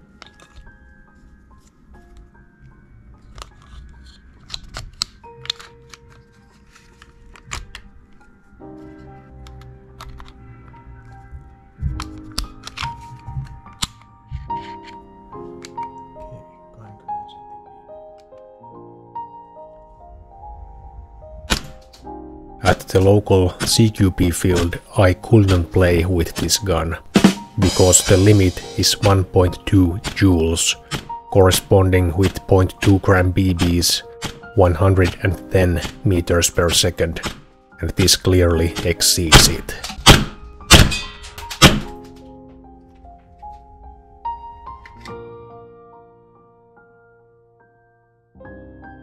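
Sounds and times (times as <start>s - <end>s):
background music sustained tones: 0.0s - 49.0s
airsoft pistol shot: 21.5s - 21.8s, 39.3s - 42.0s.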